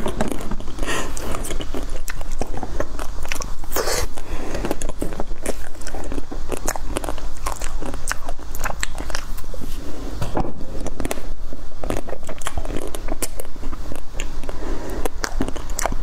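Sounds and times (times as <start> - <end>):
crunchy chewing: 0.0 - 10.0, 10.7 - 16.0.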